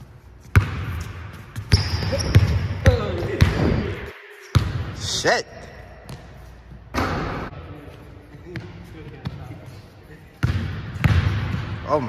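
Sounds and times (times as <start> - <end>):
basketball striking hoop: 10.4 - 11.8.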